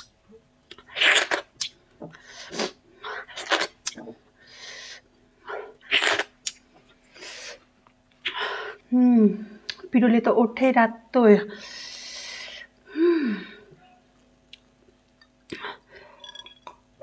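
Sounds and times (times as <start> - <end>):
faint steady hum: 0.0 - 17.0
lip smacks: 0.7 - 2.8, 3.4 - 4.1, 5.8 - 6.6
licking and sucking fingers: 3.5 - 4.1.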